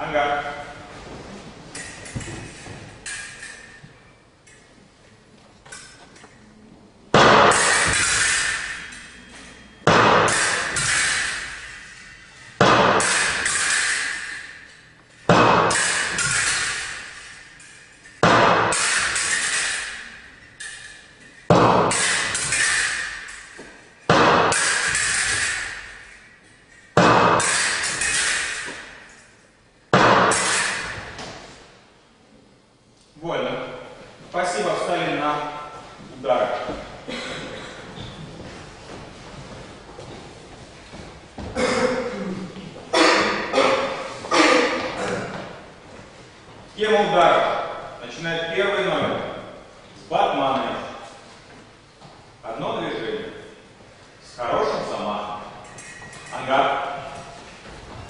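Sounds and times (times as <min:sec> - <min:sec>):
fencing swords clashing: 0:01.7 - 0:31.6, 0:40.9 - 0:45.6, 0:54.9 - 0:58.0.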